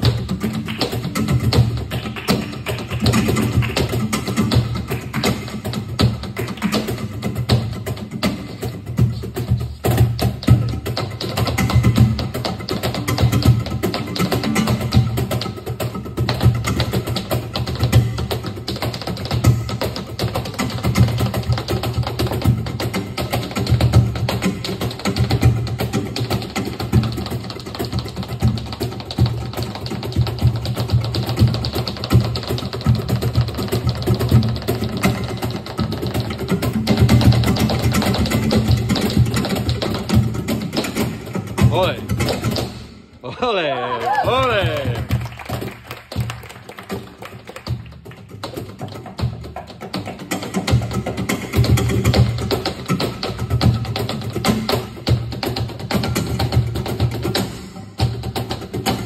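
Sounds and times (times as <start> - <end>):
live flamenco music: 0.0 - 59.0
rapid percussive strikes: 0.0 - 59.0.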